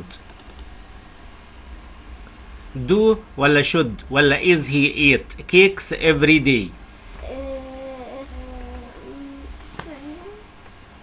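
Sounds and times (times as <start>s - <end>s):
faint low hum: 0.0s - 11.0s
light computer clicks: 0.1s - 0.7s.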